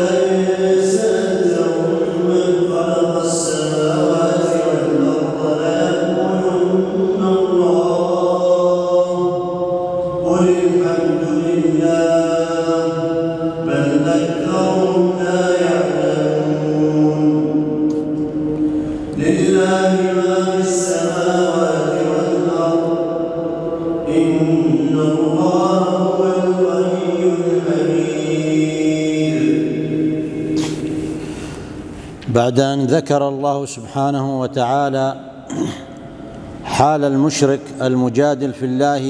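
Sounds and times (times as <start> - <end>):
man reciting in melodic chant: 0.0 - 31.2, 32.2 - 39.0.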